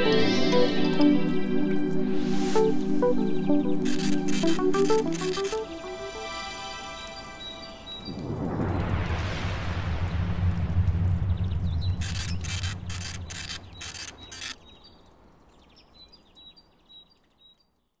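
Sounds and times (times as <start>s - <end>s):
low drone: 0.0s - 14.6s
quick hissing bursts: 3.8s - 5.6s, 12.0s - 14.6s.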